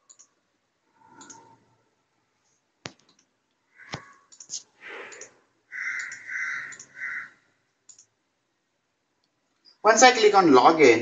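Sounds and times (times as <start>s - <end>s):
faint clicks: 0.1s - 0.4s, 1.1s - 1.7s, 2.8s - 7.0s, 7.8s - 8.1s
crow cawing: 3.7s - 4.3s, 5.7s - 7.5s.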